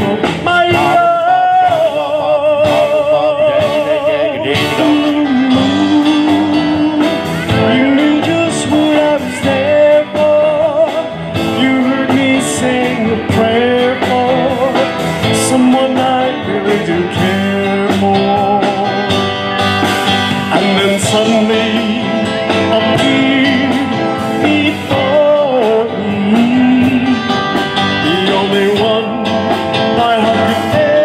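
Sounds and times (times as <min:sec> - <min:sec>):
drum kit with cymbal hits: 0:00.0 - 0:31.0
electric guitars: 0:00.0 - 0:31.0
man singing: 0:00.0 - 0:31.0.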